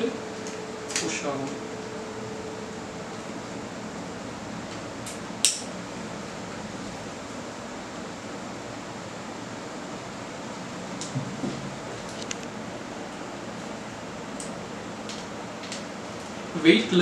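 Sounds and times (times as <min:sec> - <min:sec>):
steady background hiss: 0:00.0 - 0:17.0.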